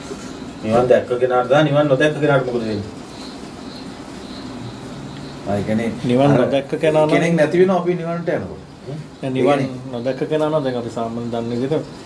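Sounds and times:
faint high chirps: 0.0 - 12.0.

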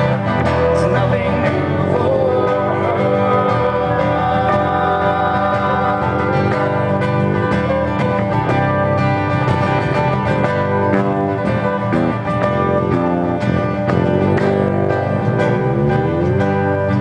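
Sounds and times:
acoustic guitars playing: 0.0 - 17.0.

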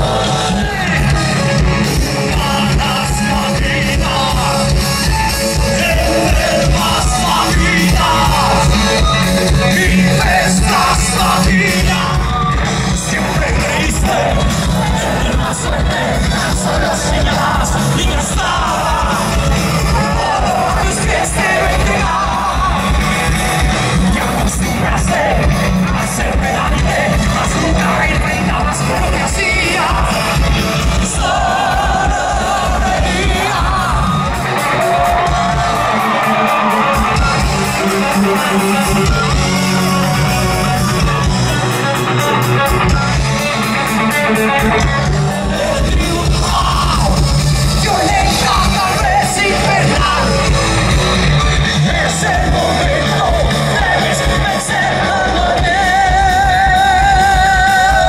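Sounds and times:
man singing: 0.0 - 35.5, 36.3 - 40.3, 42.0 - 58.0
live rock band playing: 0.0 - 58.0.

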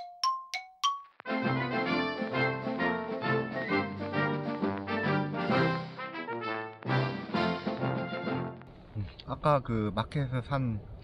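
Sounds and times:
bell-like dings jingle: 0.0 - 1.2
cheerful brass music: 1.2 - 8.6.

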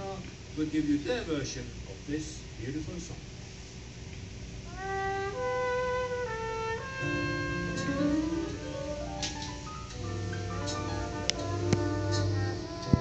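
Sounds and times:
band playing slow song: 4.7 - 13.0
light cymbal tick: 9.2 - 13.0.

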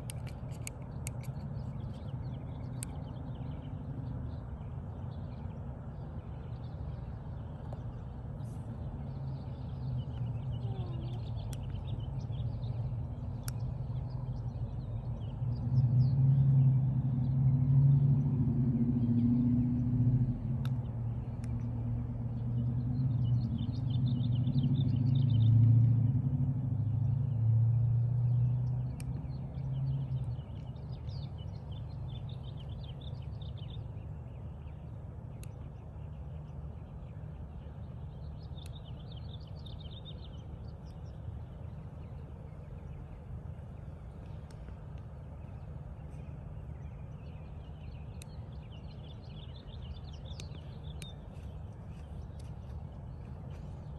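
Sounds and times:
small birds chirping: 0.0 - 17.6, 18.2 - 25.8, 26.8 - 53.9
low engine-like hum: 0.0 - 53.9.

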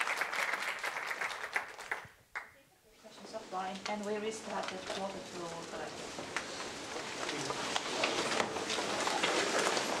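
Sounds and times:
audience applauding: 0.0 - 2.5.

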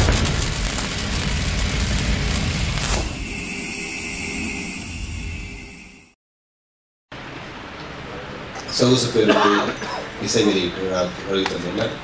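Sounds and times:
sharp hit: 0.0 - 5.9
noisy rush from boom: 0.0 - 6.2
high ringing tone: 2.9 - 6.2.

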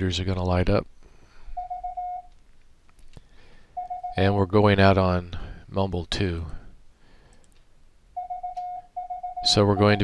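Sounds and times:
morse code beep: 1.6 - 2.3, 3.8 - 4.4, 8.2 - 10.0
faint clicks: 7.3 - 7.7.

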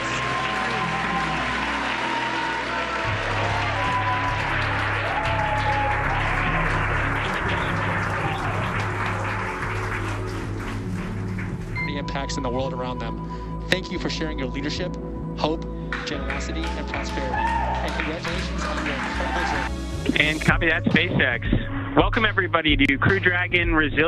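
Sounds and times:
crowd applauding: 0.0 - 13.2, 15.8 - 21.2
background music: 0.0 - 24.0.

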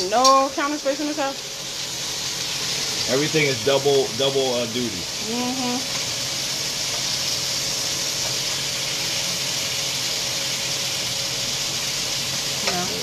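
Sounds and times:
chicken sizzling in a skillet: 0.0 - 13.0.

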